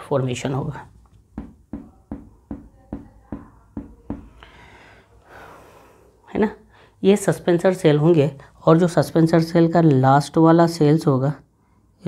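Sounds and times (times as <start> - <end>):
marker tapping whiteboard: 1.1 - 4.4
man breathing: 4.3 - 7.0.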